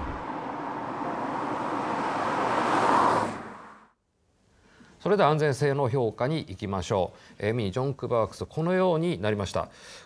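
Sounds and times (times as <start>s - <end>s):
car passing by: 0.0s - 4.0s.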